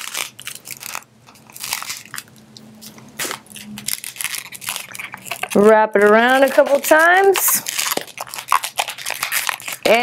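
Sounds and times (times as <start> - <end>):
balloon squeaking and crackling: 0.0 - 2.2, 3.2 - 10.0.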